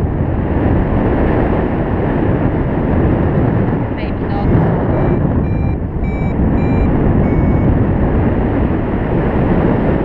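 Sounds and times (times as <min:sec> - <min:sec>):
wind over microphone: 0:00.0 - 0:10.0
variometer beeping: 0:04.1 - 0:07.9.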